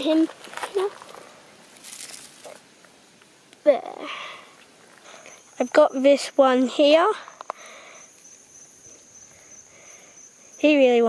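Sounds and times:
dry leaves rustling: 0:00.0 - 0:02.8.

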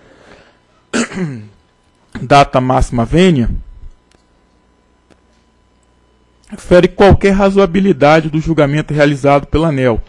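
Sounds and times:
man clearing his throat: 0:00.9 - 0:01.6.

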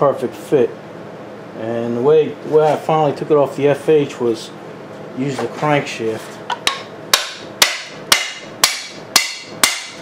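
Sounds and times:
hammer striking metal: 0:06.7 - 0:10.0.

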